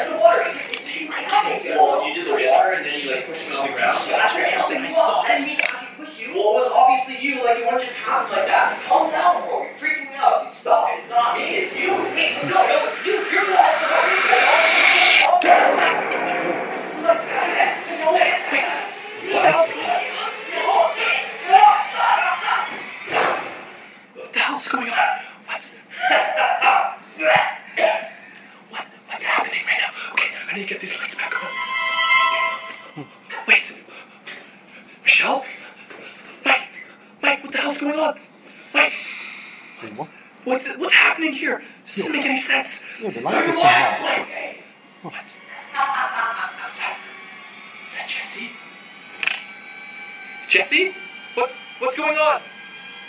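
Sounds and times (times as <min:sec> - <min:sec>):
people talking: 0:00.0 - 0:22.9, 0:39.8 - 0:47.0
loud hiss: 0:12.0 - 0:15.4.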